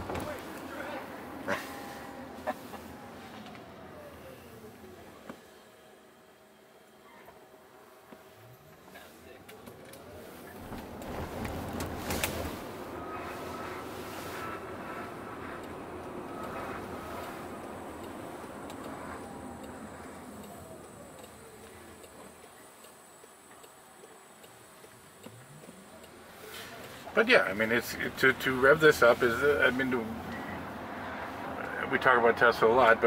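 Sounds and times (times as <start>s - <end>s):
tyre and road noise: 0.0s - 6.0s, 7.0s - 33.0s.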